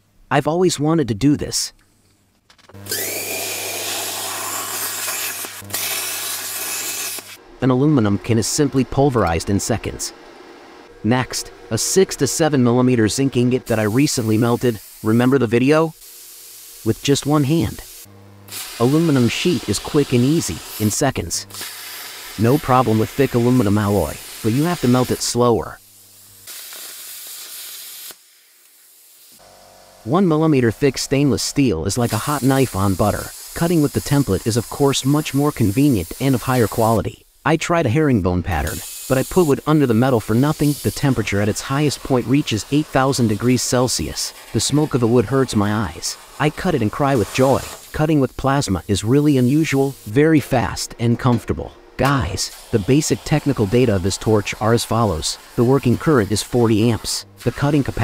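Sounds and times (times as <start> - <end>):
plasma cutter hissing: 2.9 - 7.4, 13.6 - 29.4, 31.9 - 37.4, 38.6 - 50.5, 52.2 - 58.0
low electrical hum: 5.4 - 26.5.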